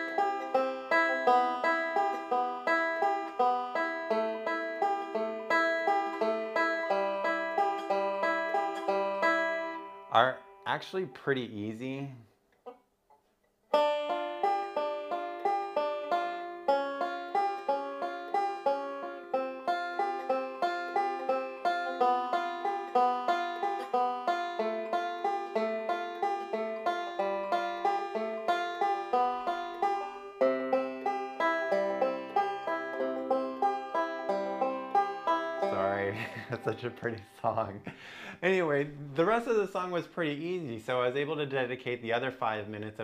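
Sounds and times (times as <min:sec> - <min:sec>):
banjo picking rolling notes: 0:00.0 - 0:10.9, 0:13.7 - 0:37.8.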